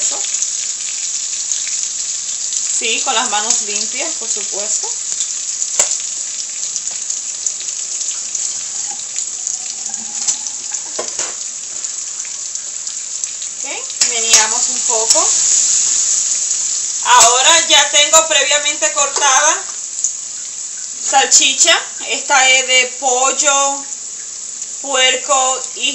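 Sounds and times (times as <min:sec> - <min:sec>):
vegetables sizzling in oil: 0:00.0 - 0:25.9.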